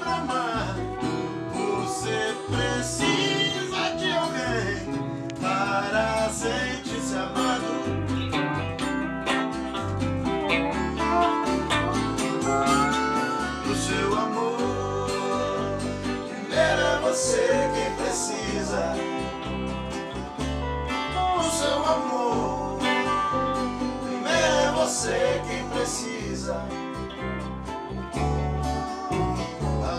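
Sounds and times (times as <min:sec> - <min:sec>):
acoustic guitar: 0:00.0 - 0:29.9
electric guitar: 0:00.0 - 0:29.9
lap steel guitar slide notes: 0:08.2 - 0:25.8.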